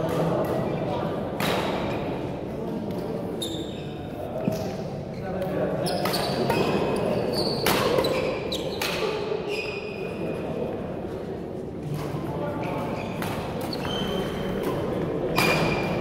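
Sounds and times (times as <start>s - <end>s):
echoing chatter of voices: 0.0s - 16.0s
shoes squeaking on wooden floor: 12.7s - 14.3s.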